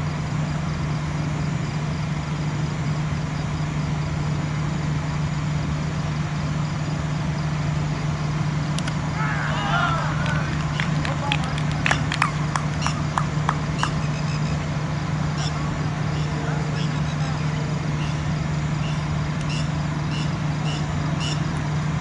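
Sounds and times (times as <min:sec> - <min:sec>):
steady low hum: 0:00.0 - 0:22.0
player shouting: 0:09.1 - 0:12.4
sharp claps or clicks: 0:10.2 - 0:14.0.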